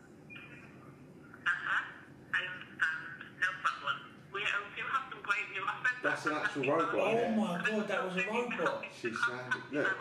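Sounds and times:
automated voice through phone speaker: 0:05.6 - 0:10.0.

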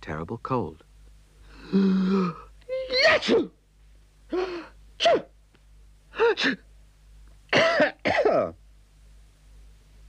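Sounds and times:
man sneezing: 0:01.7 - 0:03.6, 0:04.3 - 0:05.4, 0:06.1 - 0:06.7, 0:07.5 - 0:08.6.

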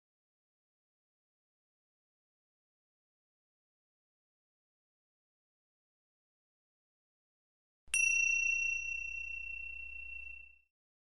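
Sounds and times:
bell-like chime: 0:07.9 - 0:10.7.

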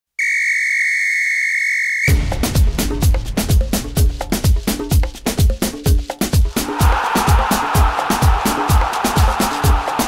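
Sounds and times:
high-pitched whistle tone: 0:00.2 - 0:02.2.

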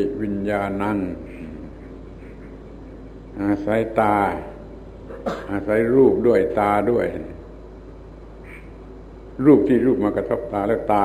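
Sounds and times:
man speaking: 0:00.0 - 0:01.9, 0:03.3 - 0:04.6, 0:09.4 - 0:11.0
low hum and faint hiss: 0:00.0 - 0:11.0.

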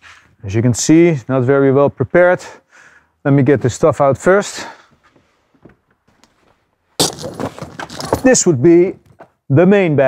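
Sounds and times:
metal carabiners clinking: 0:07.0 - 0:09.2.

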